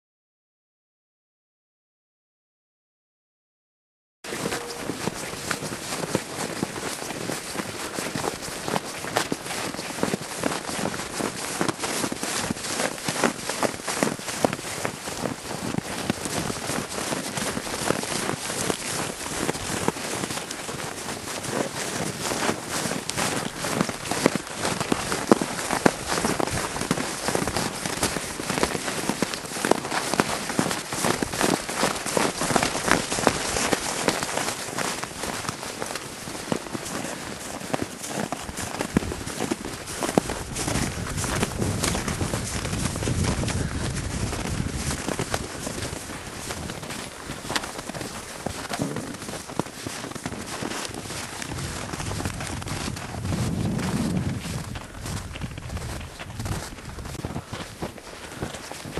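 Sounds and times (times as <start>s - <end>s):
hooves crunching in snow: 4.3s - 58.9s.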